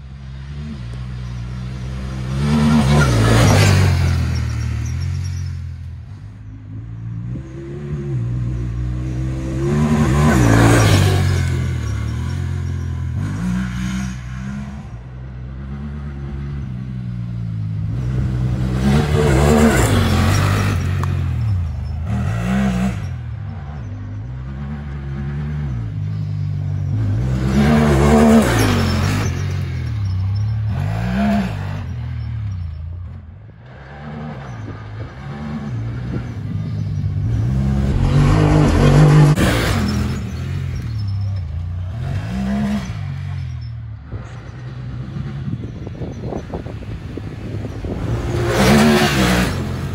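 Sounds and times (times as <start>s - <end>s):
engine revving: 0.0s - 49.9s.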